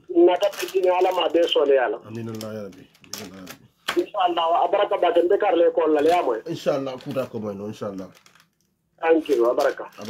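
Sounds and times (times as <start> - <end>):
man talking: 2.0 - 3.7, 6.4 - 8.2.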